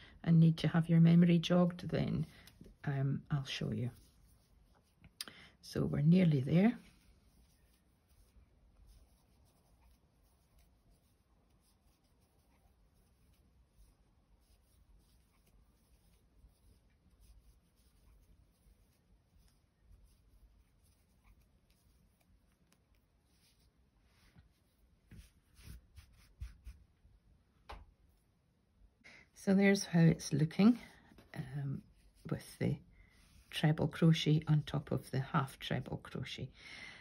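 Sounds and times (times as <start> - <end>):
soft fabric rustles: 1.0 - 28.4, 29.3 - 36.4
crochet hook rubbing and ticking: 2.4 - 23.7.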